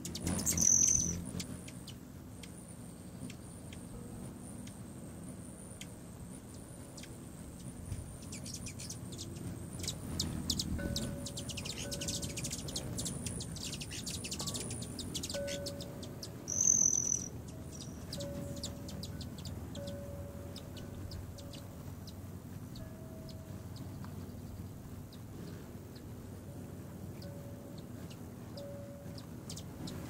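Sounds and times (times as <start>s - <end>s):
hummingbirds chittering: 0.0s - 30.0s
high bird squeal: 0.4s - 1.2s, 16.5s - 18.0s.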